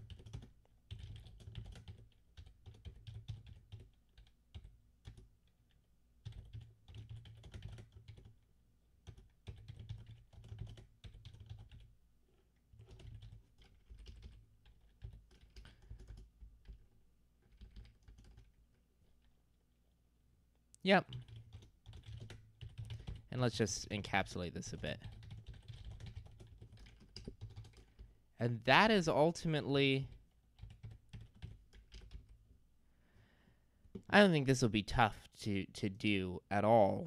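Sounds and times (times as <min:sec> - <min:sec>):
typing on keyboard: 0:00.0 - 0:08.4, 0:09.0 - 0:16.8, 0:17.4 - 0:19.3, 0:21.1 - 0:23.3, 0:24.7 - 0:28.1, 0:30.1 - 0:32.4.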